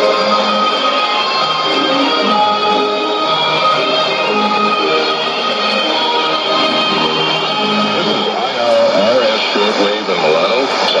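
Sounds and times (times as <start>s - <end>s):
radio speech through speaker: 7.8s - 11.0s.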